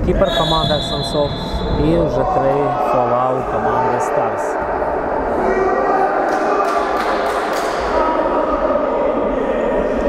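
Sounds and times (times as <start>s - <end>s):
din of indoor ball game: 0.0s - 10.0s.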